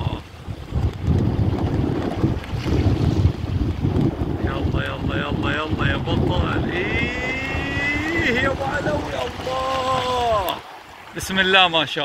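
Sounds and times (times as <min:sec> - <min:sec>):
wind buffeting microphone: 0:00.0 - 0:11.8
small waves washing: 0:00.0 - 0:12.0.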